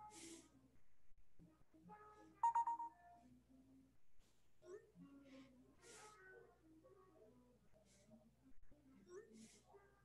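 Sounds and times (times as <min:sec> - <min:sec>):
smartphone electronic tone pulses: 0:02.4 - 0:02.9.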